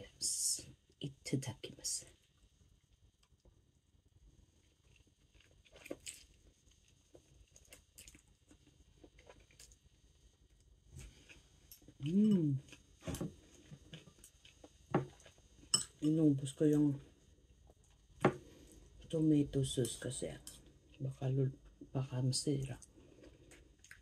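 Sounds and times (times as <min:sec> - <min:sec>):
person chewing noodles: 0:04.6 - 0:09.8, 0:11.0 - 0:15.7, 0:22.8 - 0:24.0.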